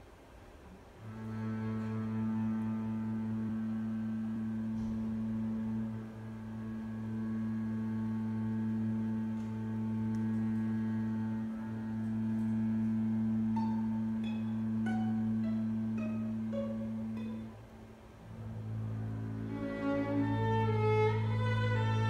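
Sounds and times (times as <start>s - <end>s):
double bass bowing: 1.0s - 22.0s
violin bowing held notes: 1.0s - 22.0s.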